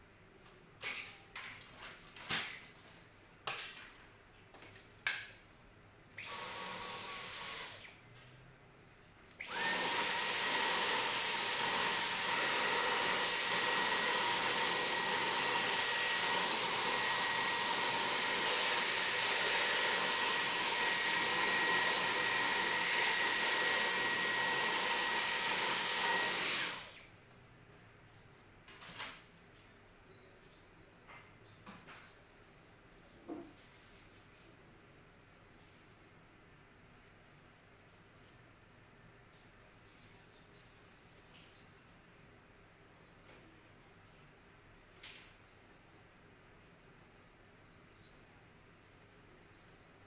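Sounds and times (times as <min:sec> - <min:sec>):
vacuum cleaner motor whining: 0:09.4 - 0:27.0.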